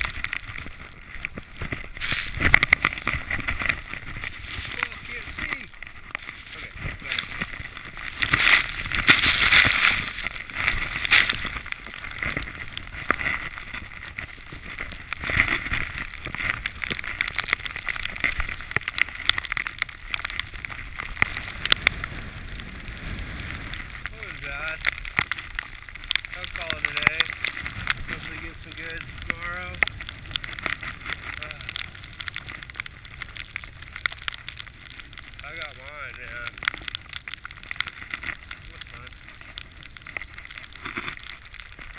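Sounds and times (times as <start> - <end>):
skis rushing through powder snow: 0.0 - 19.4, 20.0 - 31.7.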